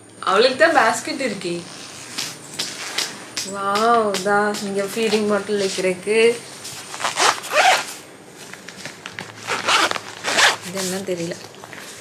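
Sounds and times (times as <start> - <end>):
handling of bag fabric: 6.6 - 12.0
zipper on backpack: 6.9 - 7.9, 9.4 - 11.0.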